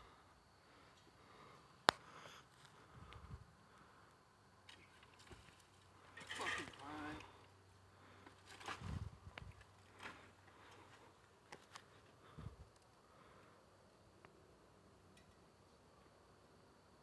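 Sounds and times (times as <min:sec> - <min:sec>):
faint voice speaking: 0:06.4 - 0:07.4.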